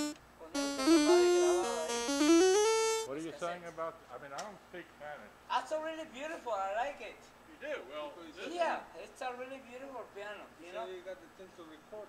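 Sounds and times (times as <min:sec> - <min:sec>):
electronic keyboard melody: 0:00.0 - 0:03.1.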